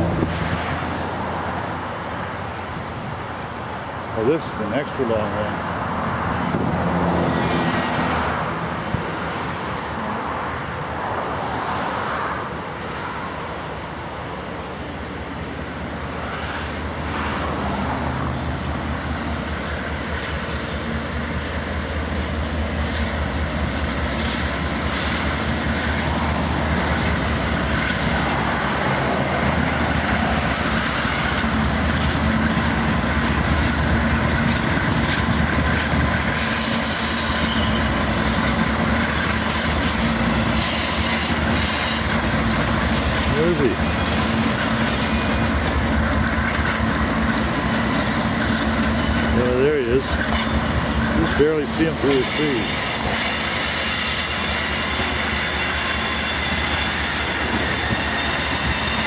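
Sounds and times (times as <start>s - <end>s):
freight train rumbling on bridge: 0.0s - 59.0s.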